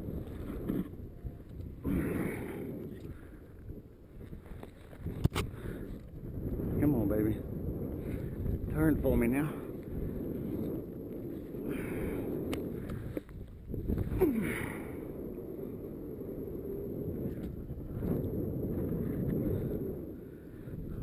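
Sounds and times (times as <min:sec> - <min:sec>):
wind rushing over microphone: 0:00.0 - 0:21.0.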